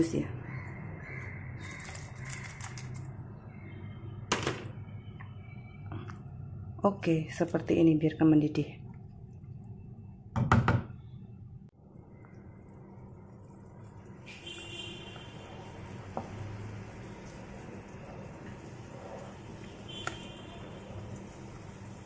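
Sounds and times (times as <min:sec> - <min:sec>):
broth bubbling in a pot: 0:11.7 - 0:22.0.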